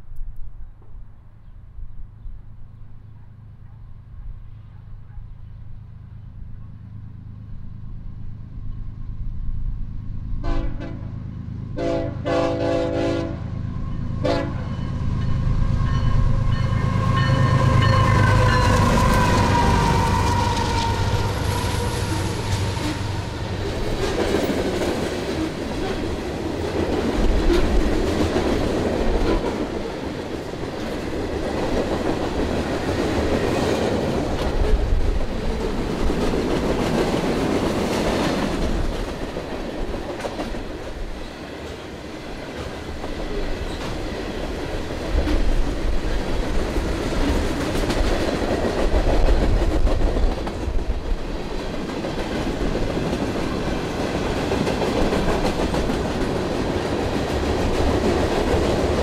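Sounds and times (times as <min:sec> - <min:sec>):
train cars rumbling past: 0:02.2 - 0:59.0.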